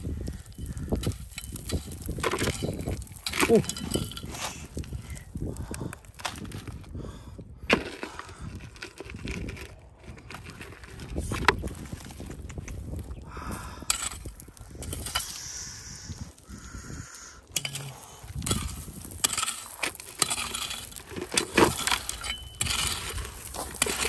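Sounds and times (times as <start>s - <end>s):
gravel clicking and rattling: 0.0s - 24.0s
wind buffeting microphone: 0.0s - 24.0s.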